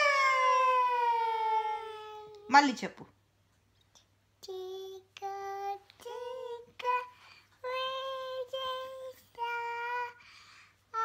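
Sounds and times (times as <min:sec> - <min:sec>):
toddler vocal sound: 0:00.0 - 0:02.5.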